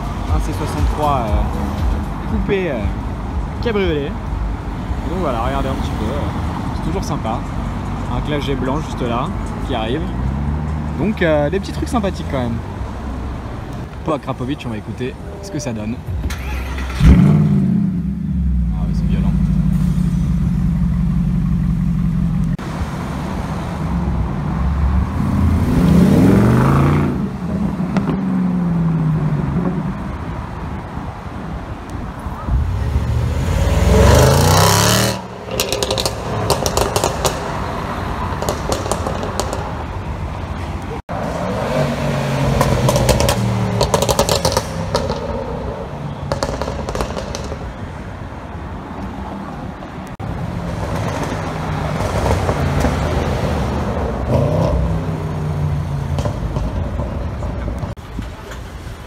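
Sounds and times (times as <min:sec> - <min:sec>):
car engine revving: 0:14.4 - 0:30.6, 0:32.3 - 0:47.8
car engine idling deeply: 0:15.2 - 0:22.6.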